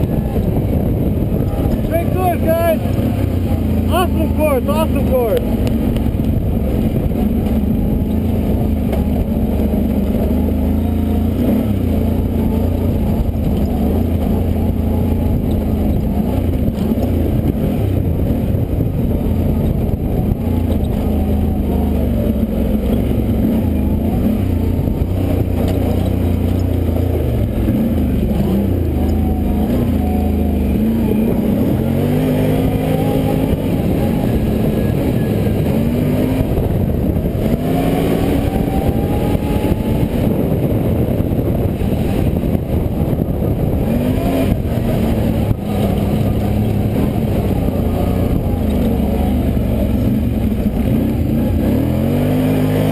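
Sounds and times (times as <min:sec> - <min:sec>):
quad engine revving: 0:00.0 - 0:52.9.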